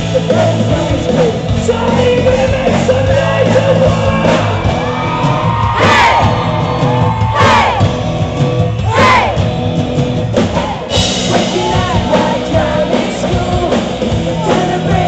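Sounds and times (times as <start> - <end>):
person singing: 0.0 - 4.6, 10.7 - 15.0
bass guitar: 0.0 - 15.0.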